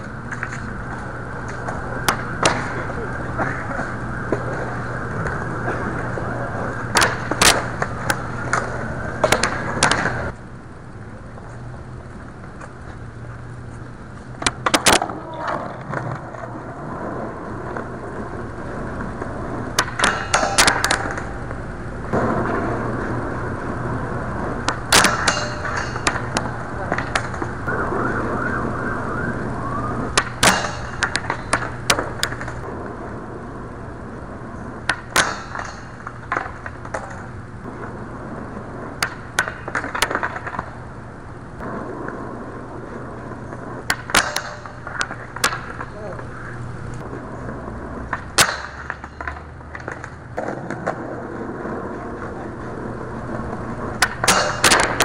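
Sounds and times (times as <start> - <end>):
skateboard clacks and grinds: 0.0 - 10.4, 14.4 - 27.6, 30.1 - 33.4, 34.5 - 40.9, 41.6 - 55.0
skateboard wheels rolling on asphalt: 0.0 - 55.0
steady low hum: 0.0 - 55.0.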